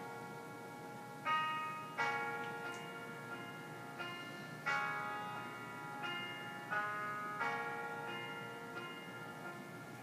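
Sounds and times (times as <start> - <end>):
bell-like chords: 0.0 - 10.0.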